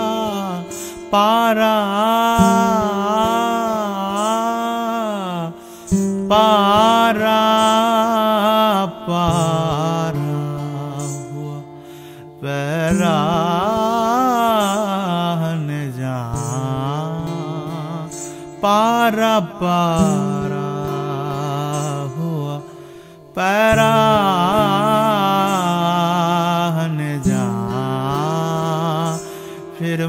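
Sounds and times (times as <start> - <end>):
acoustic guitar: 0.0 - 30.0
man singing ornamented held notes: 0.0 - 30.0.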